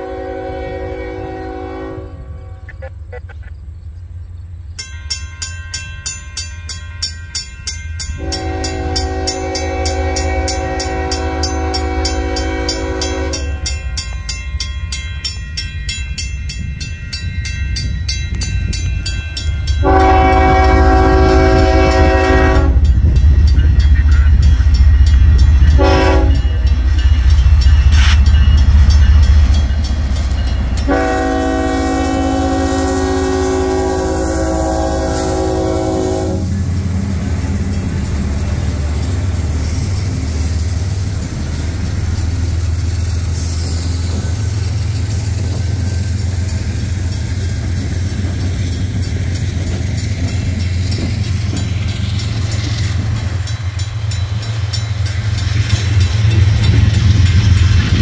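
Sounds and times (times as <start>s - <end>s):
locomotive air horn: 0.0s - 3.2s, 8.2s - 13.7s, 19.8s - 23.0s, 25.6s - 26.7s, 30.8s - 36.7s
diesel engines: 0.0s - 4.8s, 17.8s - 58.0s
train rolling: 0.0s - 58.0s
crossing bells ringing: 4.6s - 58.0s.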